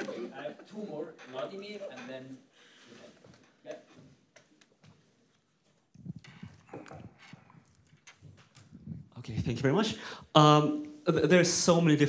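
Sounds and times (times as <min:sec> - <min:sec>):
microphone handling noise: 0:05.9 - 0:09.6.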